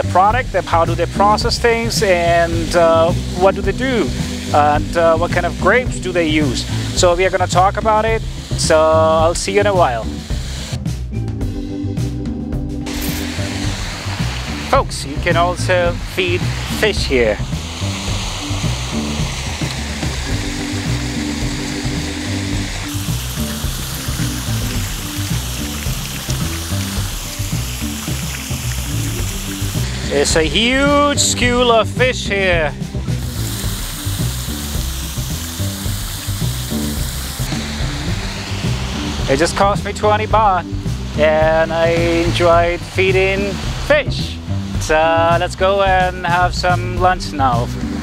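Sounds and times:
fountain spraying water: 0:00.0 - 0:11.0, 0:12.9 - 0:48.0
background music: 0:00.0 - 0:48.0.

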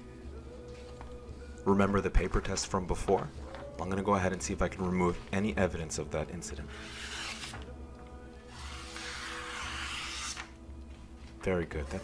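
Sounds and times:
background music: 0:00.0 - 0:12.0
knife slicing paper: 0:06.7 - 0:07.7, 0:08.5 - 0:10.6.

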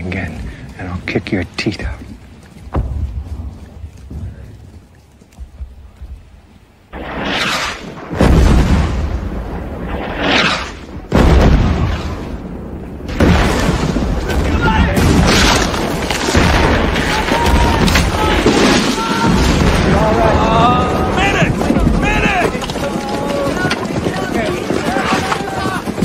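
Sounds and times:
artillery shells exploding: 0:06.9 - 0:25.1
battle noise: 0:14.2 - 0:26.0.

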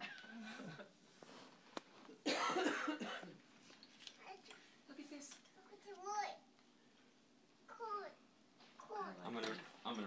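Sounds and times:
person coughing: 0:02.2 - 0:03.4.

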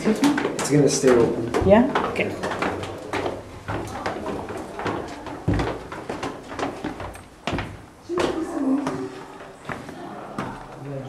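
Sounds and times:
heavy thumps: 0:00.0 - 0:09.1
indistinct voices: 0:08.0 - 0:11.0.

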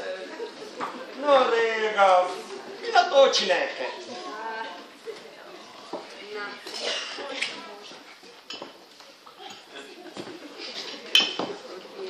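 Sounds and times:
tableware clinking: 0:08.4 - 0:08.8, 0:10.8 - 0:11.6.

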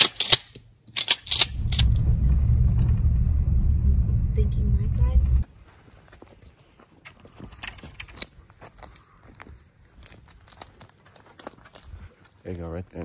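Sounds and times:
truck cabin rumble: 0:01.4 - 0:05.5
footsteps through dry brush: 0:05.5 - 0:13.0.

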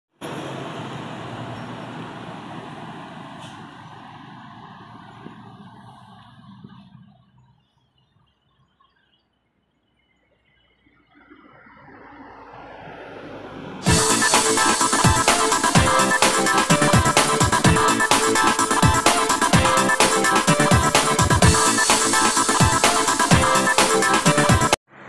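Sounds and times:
diesel truck engine labouring: 0:00.1 - 0:07.6, 0:11.5 - 0:25.0
traffic passing: 0:00.1 - 0:08.6, 0:09.6 - 0:25.0.

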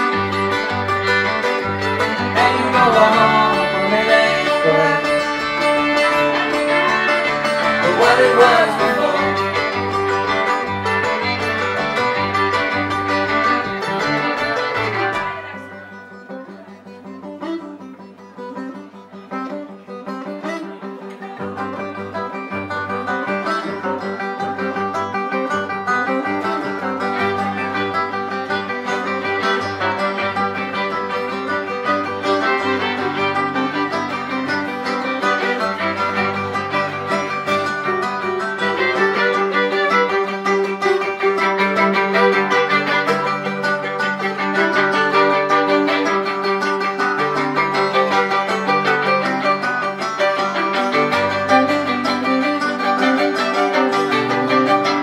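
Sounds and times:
plucked upright bass: 0:00.0 - 0:19.0, 0:19.7 - 0:55.0
fiddle: 0:00.0 - 0:55.0
strummed acoustic guitars: 0:00.0 - 0:55.0.

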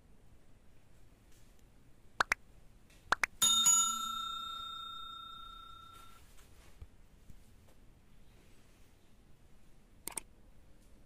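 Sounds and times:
bright bell ding: 0:03.4 - 0:06.3
quick clicks: 0:10.0 - 0:10.3.

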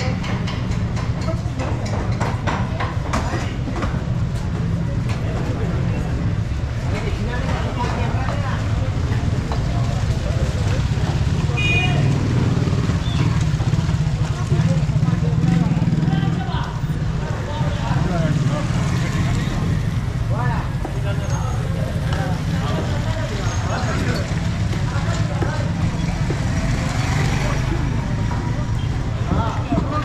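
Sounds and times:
indistinct voices: 0:00.0 - 0:30.0
motorcycle engines passing: 0:00.0 - 0:30.0.

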